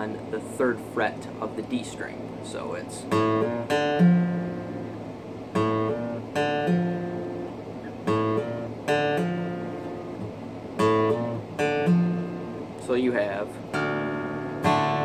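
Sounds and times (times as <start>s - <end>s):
acoustic guitar riff: 0.0s - 15.0s.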